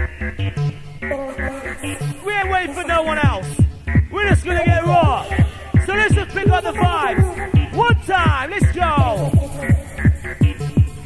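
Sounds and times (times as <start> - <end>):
fast electronic dance music: 1.1 - 11.0
short bass notes: 2.3 - 11.0
heavy kick drum: 3.2 - 11.0.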